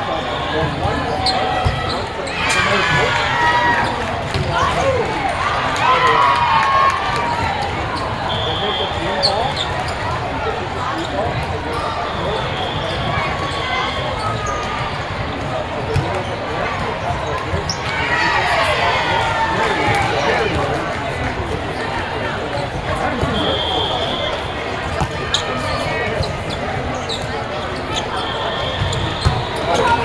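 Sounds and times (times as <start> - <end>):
players shouting: 0.1 - 9.0, 21.8 - 30.0
sneaker squeaks: 0.6 - 4.9, 7.6 - 10.2, 11.0 - 15.0, 17.0 - 17.9, 22.5 - 30.0
ball hitting and bouncing on court: 4.2 - 4.9, 24.9 - 25.4, 28.8 - 30.0
players calling: 17.2 - 30.0.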